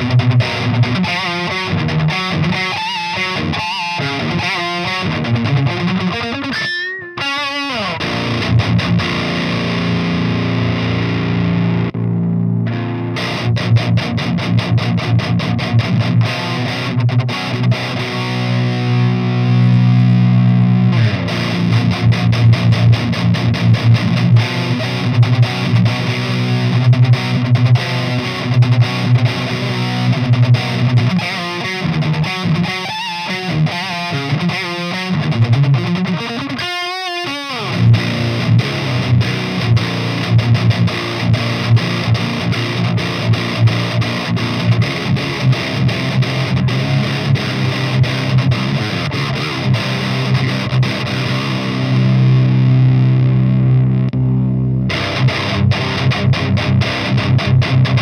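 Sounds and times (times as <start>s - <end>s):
distorted electric guitar riffs: 0.0s - 58.0s.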